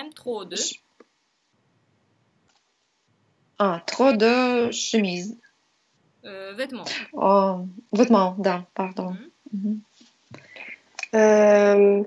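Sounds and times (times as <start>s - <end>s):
person murmuring: 9.4s - 9.8s.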